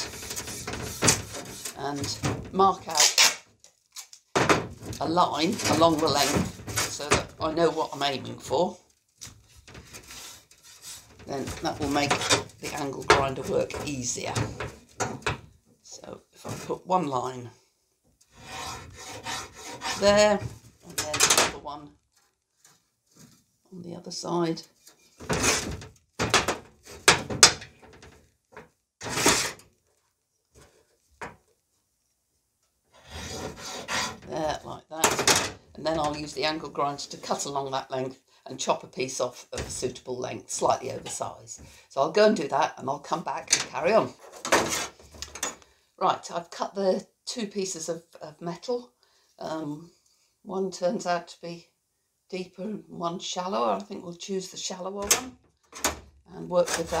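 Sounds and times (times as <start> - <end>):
scraping rustling handling noise: 0.0 - 15.6, 56.5 - 57.0.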